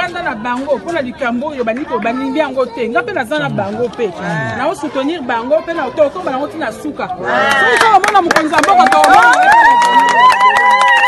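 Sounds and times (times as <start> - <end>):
overlapping voices: 3.3 - 4.7.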